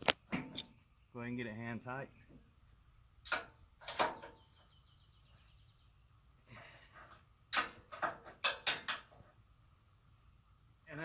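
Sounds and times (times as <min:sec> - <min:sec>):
sharp metal knocks: 0:07.5 - 0:09.2.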